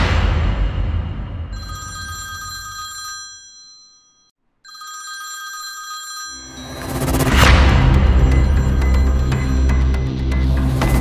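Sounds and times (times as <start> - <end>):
sound effect hit with low rumble: 0.0 - 1.6
smartphone ringing: 1.6 - 7.4, 8.0 - 10.2.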